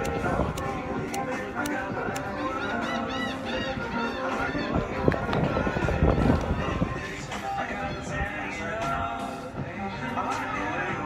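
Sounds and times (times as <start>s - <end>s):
music with sharp clicks: 0.0s - 2.4s.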